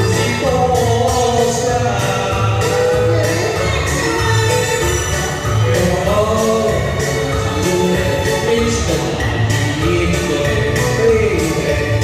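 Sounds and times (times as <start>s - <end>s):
backing music with steady beat: 0.0s - 12.0s
person singing into microphone: 0.0s - 12.0s.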